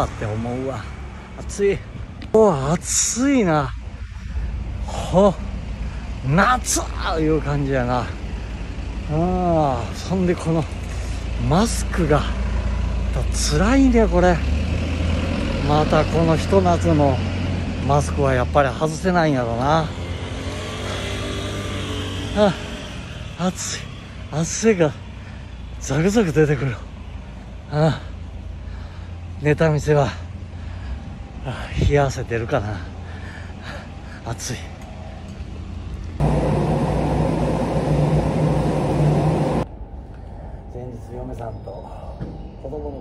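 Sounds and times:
vehicle running with low hum: 0:00.0 - 0:41.0
street noise: 0:00.0 - 0:43.0
vehicle engine running: 0:35.1 - 0:39.7.

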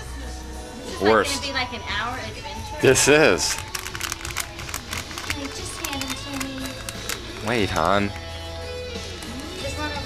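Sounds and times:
faint music: 0:00.0 - 0:10.0
metallic gift wrap crinkling: 0:02.8 - 0:08.4.

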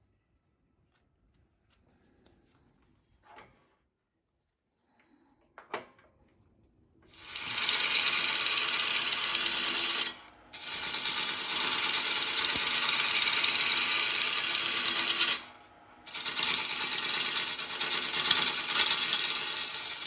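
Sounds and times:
lathe gouge scraping wood: 0:07.1 - 0:20.0.

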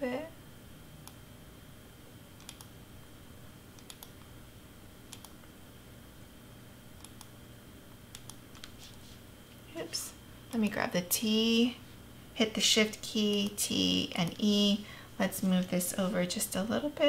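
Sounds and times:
low room hum: 0:00.0 - 0:17.0
mouse and keyboard clicks: 0:02.4 - 0:02.7, 0:05.1 - 0:05.3.

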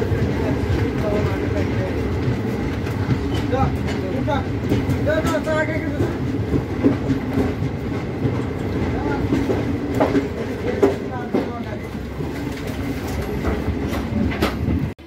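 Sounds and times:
train rumbling on track: 0:00.0 - 0:15.0
wheels clacking over rail joints: 0:00.0 - 0:15.0.

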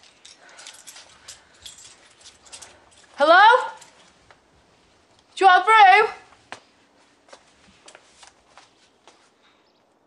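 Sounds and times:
soft footsteps on indoor floor: 0:06.3 - 0:09.4.

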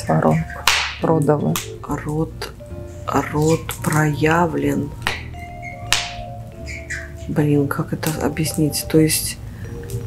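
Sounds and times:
quiet background music: 0:00.0 - 0:10.0
sharp snap: 0:00.6 - 0:01.7, 0:05.0 - 0:05.2, 0:05.9 - 0:06.2.

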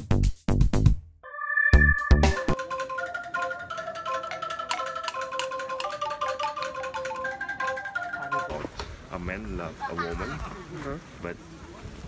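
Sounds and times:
bamboo angklung melody: 0:01.3 - 0:08.8.

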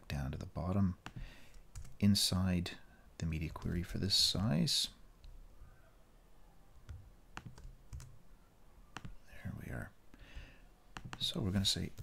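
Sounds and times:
computer keyboard clicks: 0:06.9 - 0:08.1, 0:11.0 - 0:11.4.

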